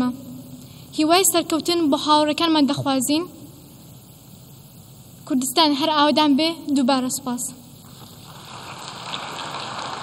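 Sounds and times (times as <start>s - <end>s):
audience applauding: 8.2s - 10.0s.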